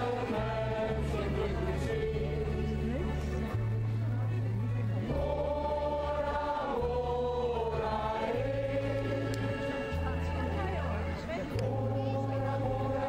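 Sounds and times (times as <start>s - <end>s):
mixed choir singing: 0.0s - 3.6s, 5.0s - 13.0s.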